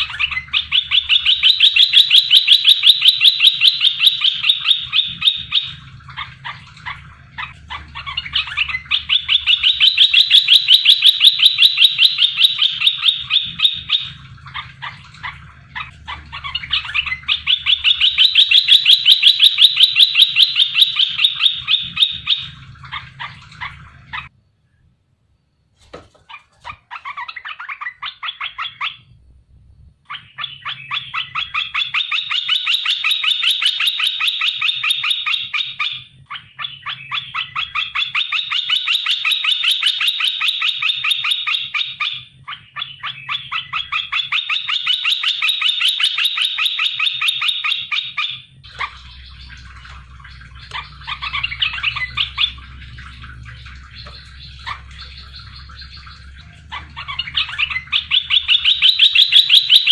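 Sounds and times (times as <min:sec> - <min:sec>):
bulbul calling rapid notes: 0:00.0 - 0:23.7, 0:48.6 - 0:59.9.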